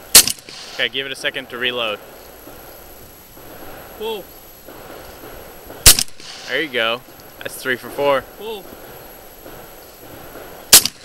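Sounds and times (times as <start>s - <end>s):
shotgun blast: 0.1s - 1.0s, 4.7s - 6.9s, 10.1s - 11.0s.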